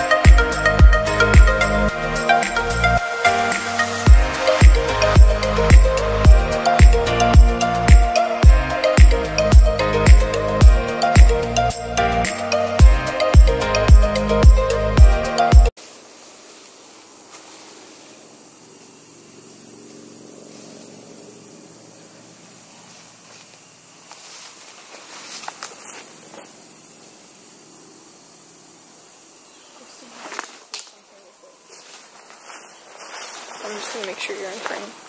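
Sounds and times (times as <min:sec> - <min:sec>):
insects hissing: 0:00.0 - 0:35.0
footsteps through undergrowth: 0:16.1 - 0:18.2, 0:22.7 - 0:26.6, 0:29.9 - 0:35.0.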